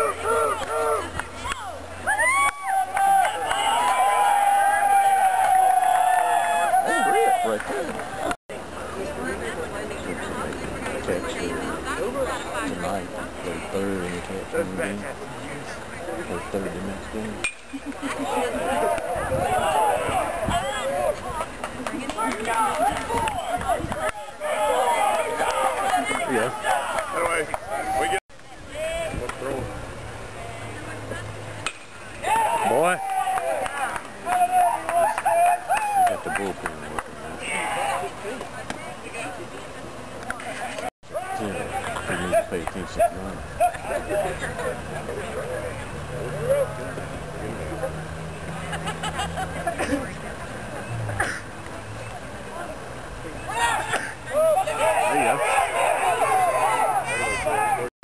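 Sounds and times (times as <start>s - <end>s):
long shout: 0.0s - 7.5s, 32.2s - 36.2s, 53.5s - 57.9s
spectators yelling: 0.0s - 8.4s, 18.0s - 29.2s, 32.1s - 36.6s, 37.3s - 38.4s, 41.1s - 47.1s, 53.3s - 57.9s.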